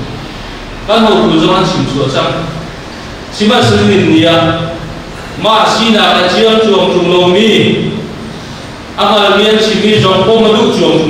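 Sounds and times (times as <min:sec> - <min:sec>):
man speaking into a microphone: 0:00.8 - 0:08.3, 0:08.9 - 0:11.0.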